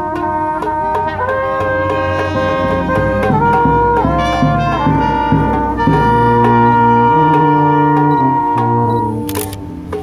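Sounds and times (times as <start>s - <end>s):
brass band holding a chord: 0.0s - 10.0s.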